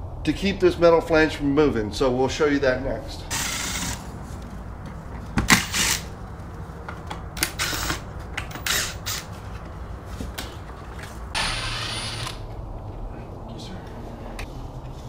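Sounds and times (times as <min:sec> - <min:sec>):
cordless drill driving screws: 0:03.3 - 0:04.0, 0:05.5 - 0:06.1, 0:07.4 - 0:09.3, 0:11.4 - 0:12.4.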